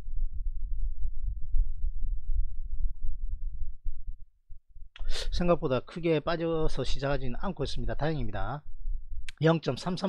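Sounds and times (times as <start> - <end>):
low rumble: 0.0 - 4.9, 7.1 - 9.3.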